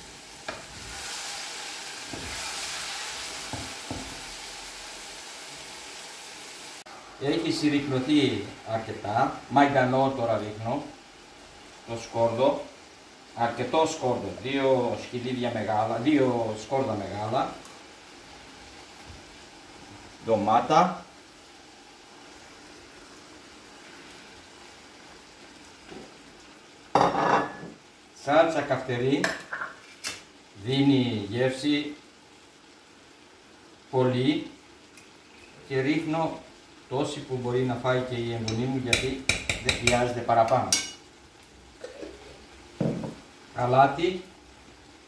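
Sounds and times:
meat sizzling in a frying pan: 0.0 - 45.0
glass jar set down on counter: 42.8 - 43.2.

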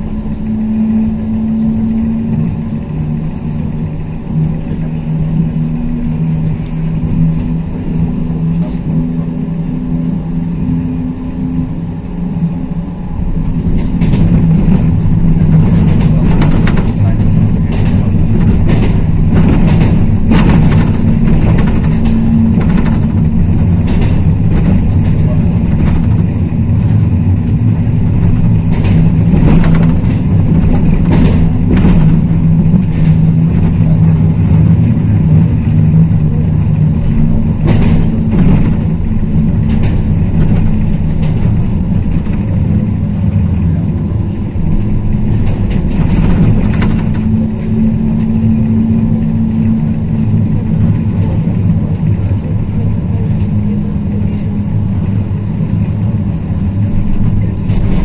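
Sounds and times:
tram running gear drone: 0.0 - 58.0
wheels clicking on track: 0.0 - 58.0.

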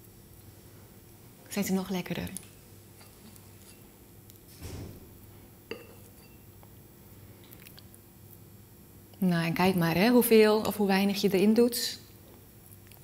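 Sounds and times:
spoon clinking on ceramic bowl: 5.7 - 6.5.

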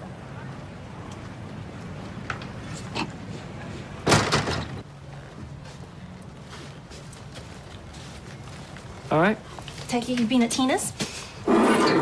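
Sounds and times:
door slamming shut: 4.0 - 4.8.

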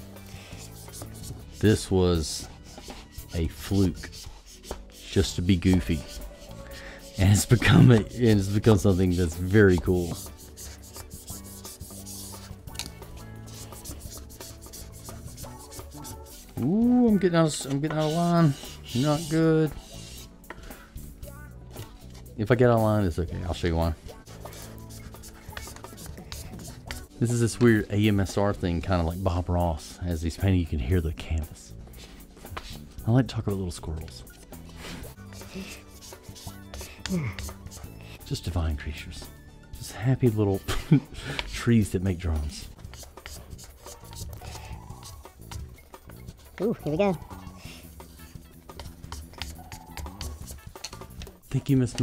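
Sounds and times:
squeegee rubbing over vinyl: 0.2 - 20.3, 24.0 - 28.4, 31.9 - 33.0, 34.1 - 38.0, 42.2 - 51.3.

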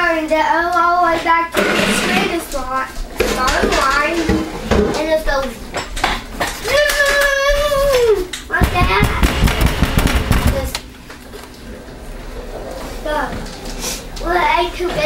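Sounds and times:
child speaking: 0.0 - 5.6, 6.6 - 9.4, 10.4 - 10.8, 13.0 - 13.5, 14.2 - 15.0
low knocks and handling bumps: 8.6 - 10.7.

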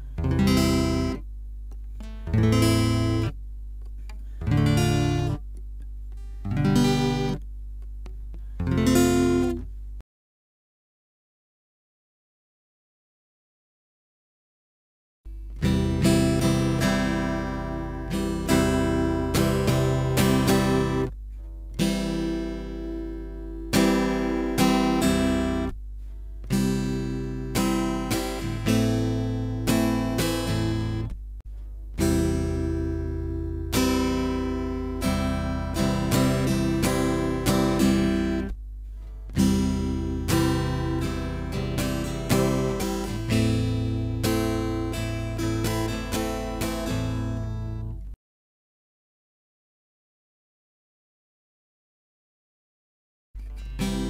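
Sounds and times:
acoustic guitar strumming: 0.0 - 1.2, 1.8 - 3.4, 4.2 - 7.4, 8.3 - 9.7, 15.3 - 48.0, 53.4 - 54.0.

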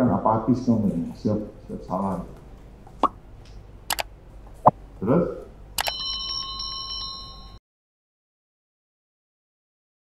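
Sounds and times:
high ringing tone: 5.8 - 7.6.

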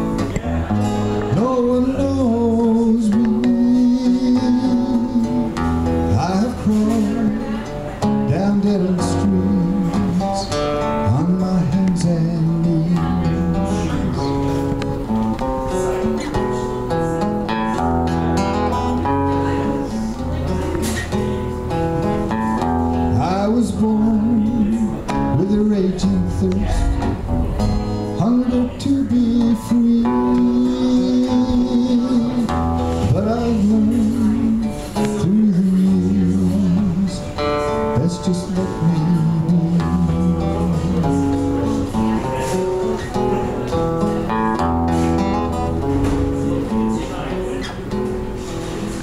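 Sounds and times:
man singing: 0.0 - 17.0, 22.3 - 43.8
acoustic guitar: 0.0 - 49.0.

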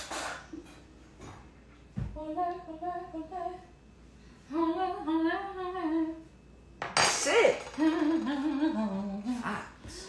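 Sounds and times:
person humming a tune: 7.8 - 10.0.

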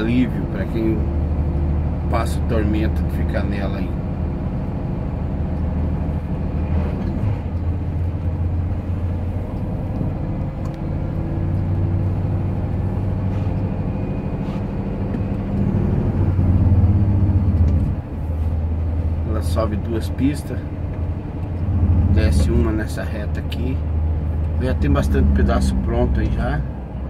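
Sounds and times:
truck diesel engine droning: 0.0 - 27.0.

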